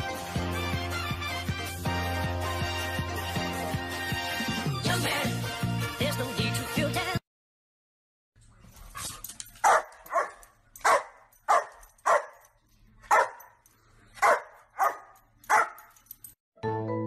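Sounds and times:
dog barking: 0:09.0 - 0:16.0.

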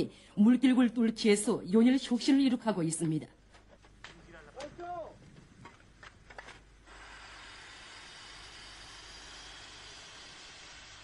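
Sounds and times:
steady machine noise: 0:06.7 - 0:11.0.

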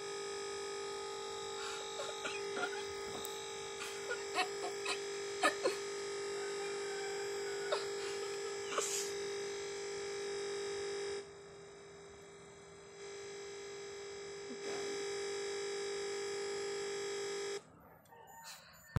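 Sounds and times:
looping electronic buzz: 0:00.0 - 0:17.8.

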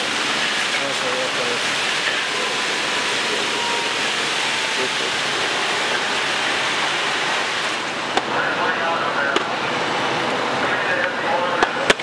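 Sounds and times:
fire hoses spraying water: 0:00.0 - 0:12.0.

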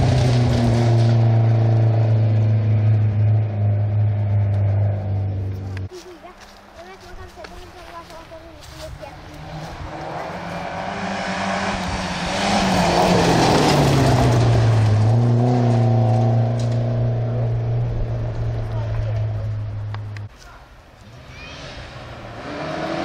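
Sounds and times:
rally car engine passing at speed: 0:00.0 - 0:05.9, 0:09.2 - 0:20.2, 0:21.1 - 0:23.0.

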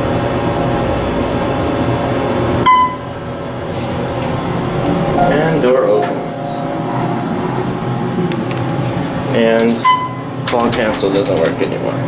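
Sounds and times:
elevator mechanical hum: 0:00.0 - 0:12.0
high beep: 0:02.6 - 0:03.1, 0:09.8 - 0:10.3.

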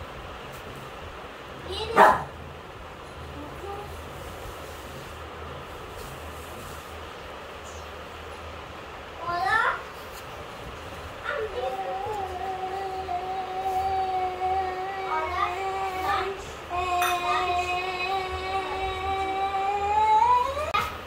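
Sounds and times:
voice holding long notes: 0:11.3 - 0:20.8.

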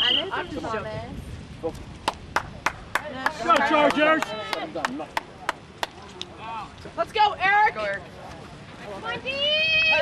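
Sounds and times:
hands clapping: 0:02.0 - 0:06.3.

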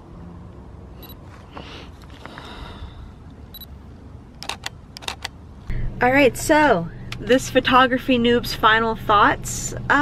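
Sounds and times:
camera focus beep: 0:01.0 - 0:01.2, 0:03.5 - 0:03.7
camera shutter clicks: 0:04.4 - 0:05.4.

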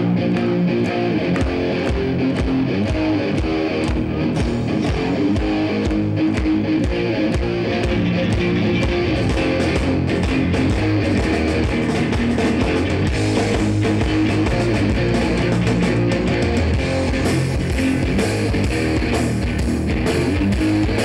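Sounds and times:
thrash metal band playing: 0:00.0 - 0:21.0.

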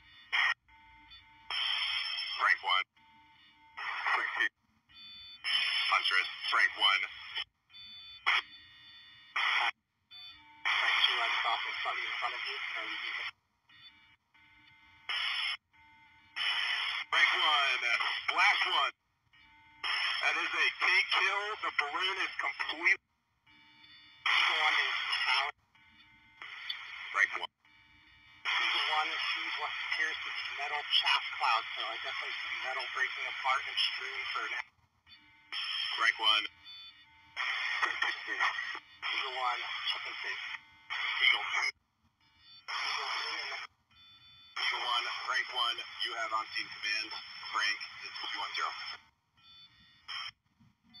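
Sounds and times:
garbled radio speech with static: 0:01.6 - 0:03.0, 0:03.8 - 0:04.6, 0:05.4 - 0:07.4, 0:10.7 - 0:13.4, 0:16.4 - 0:19.0, 0:19.8 - 0:23.0, 0:24.2 - 0:25.6, 0:26.4 - 0:27.6, 0:28.4 - 0:34.7, 0:35.6 - 0:36.6, 0:37.4 - 0:41.8, 0:42.6 - 0:43.7, 0:44.5 - 0:49.1
steady high whine tones: 0:24.2 - 0:34.6, 0:37.3 - 0:41.7, 0:42.6 - 0:49.0.

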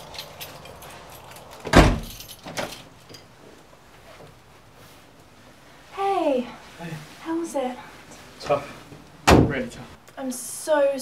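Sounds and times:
front door shutting: 0:00.0 - 0:03.1, 0:09.2 - 0:09.8.

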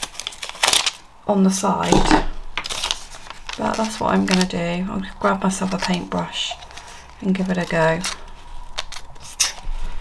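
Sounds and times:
plastic cap rubbing bottle: 0:01.9 - 0:02.3.

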